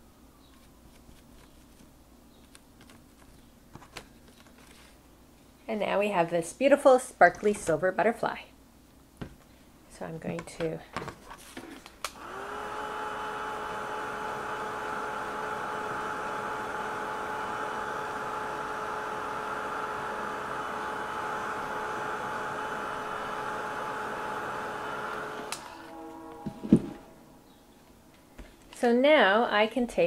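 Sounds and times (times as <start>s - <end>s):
heat tool fan whirring: 11.9s - 28.8s
tool knocking when put down: 26.4s - 27.0s.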